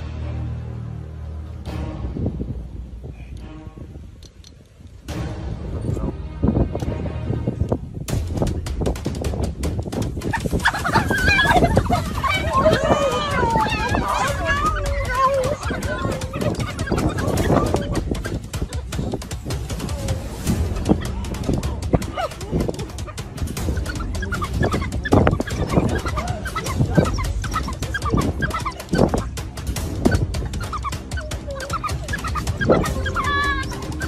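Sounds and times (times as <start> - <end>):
wild dogs twittering and chirping: 10.2 - 34.0
whining call: 10.6 - 18.9, 21.4 - 34.0.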